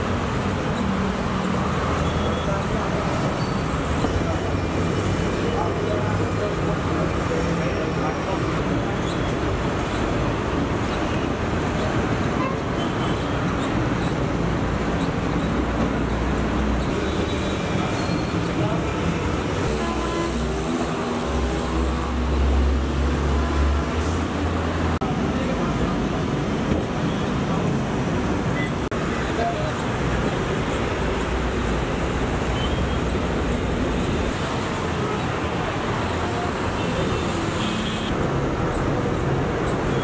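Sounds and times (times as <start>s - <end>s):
road traffic noise: 0.0s - 40.0s.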